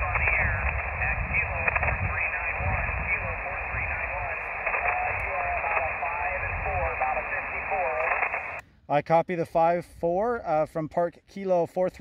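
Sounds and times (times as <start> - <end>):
faint radio voice: 0.0 - 8.6
radio band hiss: 0.0 - 8.6.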